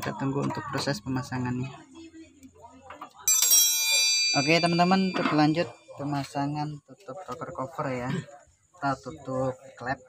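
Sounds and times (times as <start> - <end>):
bell-like metallic ring: 3.3 - 6.0.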